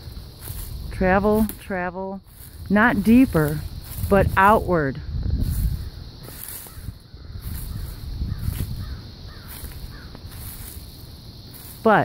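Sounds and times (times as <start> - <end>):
faint falling bird calls: 5.8 - 10.8.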